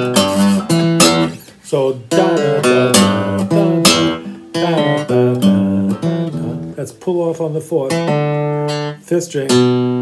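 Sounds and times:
acoustic guitar blues lick: 0.0 - 10.0.

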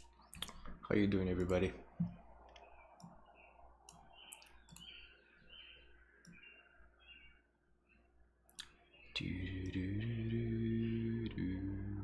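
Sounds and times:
computer mouse clicks: 1.4 - 3.2, 3.8 - 5.0.

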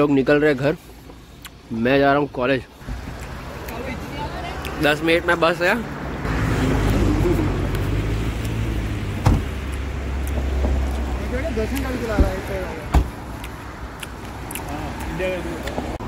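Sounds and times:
car door shutting: 9.2 - 9.6, 12.1 - 13.2
sharp knocks: 9.2 - 9.6, 12.2 - 13.2.

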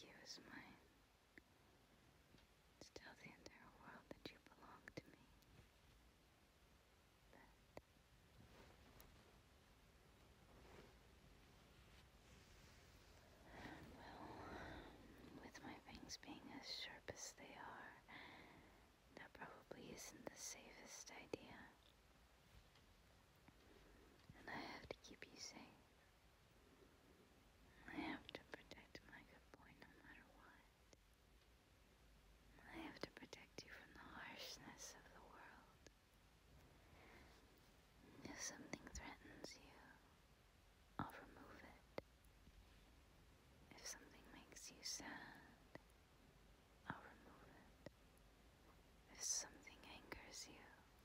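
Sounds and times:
woman whispering: 0.0 - 0.9, 2.8 - 5.5, 7.3 - 7.9, 13.2 - 21.9, 24.3 - 25.9, 27.7 - 30.8, 32.5 - 36.0, 38.0 - 40.1, 41.0 - 42.0, 43.7 - 45.9, 46.8 - 47.9, 49.0 - 51.0.

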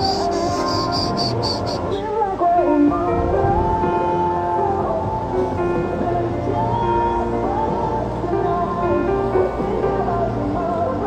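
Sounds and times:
cricket chirping: 0.0 - 2.0
background music: 0.0 - 11.0.

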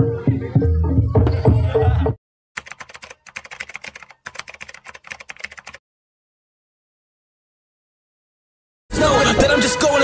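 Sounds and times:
keyboard typing clicks: 2.6 - 5.8.

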